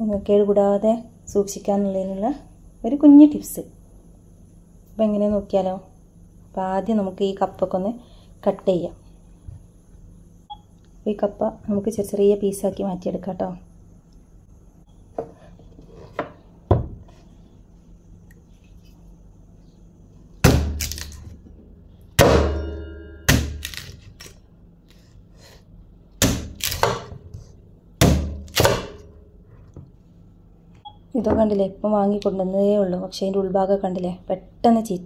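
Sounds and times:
knife chopping on wooden board: 0:20.4 - 0:20.9, 0:26.2 - 0:27.2, 0:28.0 - 0:29.1.

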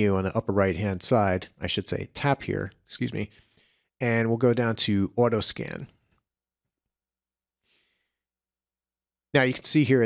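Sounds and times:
faint breath: 0:03.3 - 0:04.0, 0:07.6 - 0:08.3.

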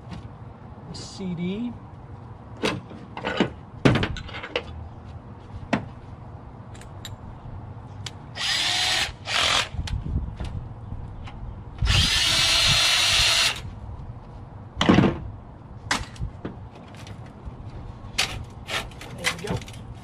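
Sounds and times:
cordless drill running: 0:08.4 - 0:09.7, 0:11.9 - 0:13.6.

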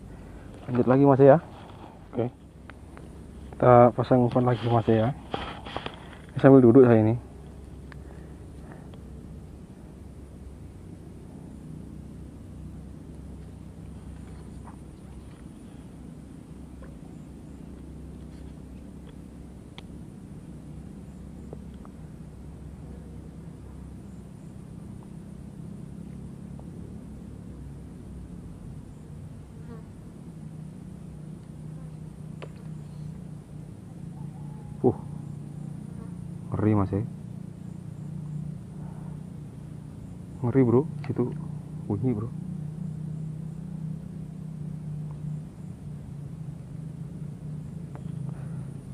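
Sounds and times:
faint high drone: 0:00.0 - 0:48.9
insects buzzing: 0:00.0 - 0:48.9.

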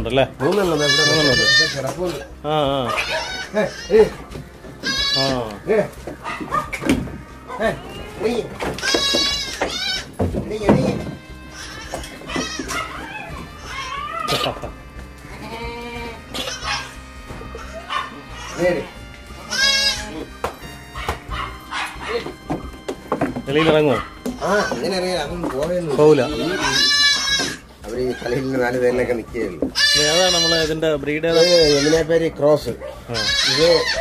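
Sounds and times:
background music: 0:00.0 - 0:34.0
goats bleating: 0:00.4 - 0:32.3, 0:33.0 - 0:34.0.

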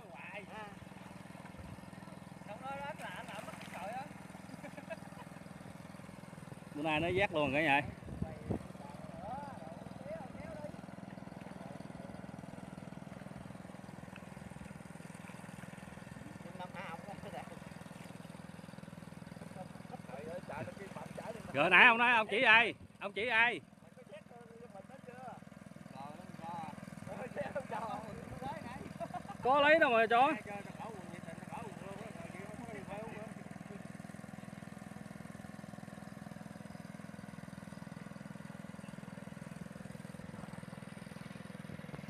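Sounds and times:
small engine running: 0:00.0 - 0:42.0.

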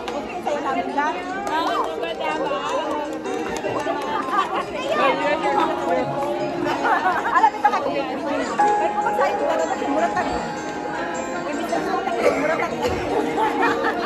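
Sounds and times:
crowd chattering: 0:00.0 - 0:14.0
music playing: 0:00.0 - 0:14.0.

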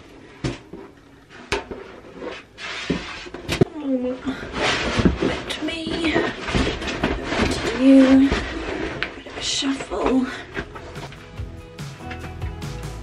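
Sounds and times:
vinyl sheet rustling and scraping: 0:01.2 - 0:03.6, 0:04.3 - 0:12.4.

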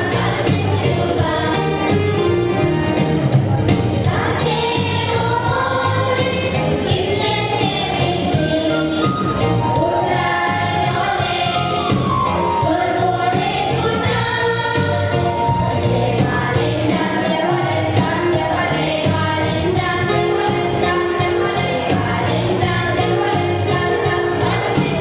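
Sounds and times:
children's choir singing: 0:00.0 - 0:03.1, 0:04.0 - 0:25.0
instrumental backing: 0:00.0 - 0:25.0.

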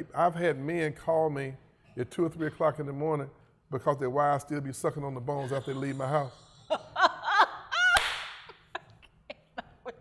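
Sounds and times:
woman laughing: 0:05.4 - 0:10.0
sharp slap: 0:08.0 - 0:08.6.

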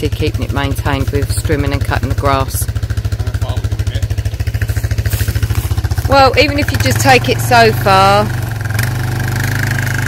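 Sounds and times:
quad bike engine running: 0:00.0 - 0:10.0.

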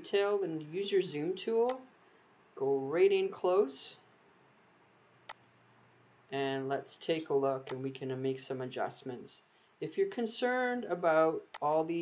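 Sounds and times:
computer mouse click: 0:05.3 - 0:05.6.

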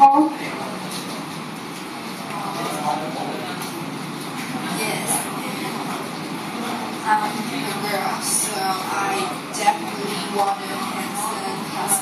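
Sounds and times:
classroom background noise: 0:00.0 - 0:12.0
faint indistinct voices: 0:00.0 - 0:12.0.

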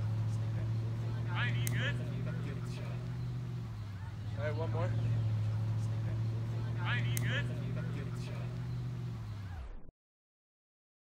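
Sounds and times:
steady low hum: 0:00.0 - 0:09.8.

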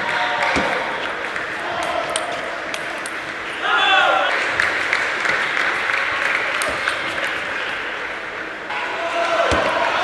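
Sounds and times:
spectators applauding: 0:04.2 - 0:07.7.

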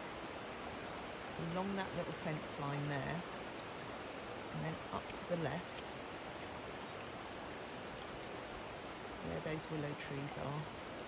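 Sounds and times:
rushing stream water: 0:00.0 - 0:11.0.

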